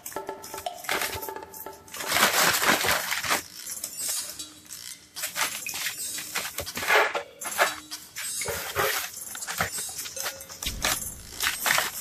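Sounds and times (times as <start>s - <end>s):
paper rustling and crinkling: 2.1s - 3.4s.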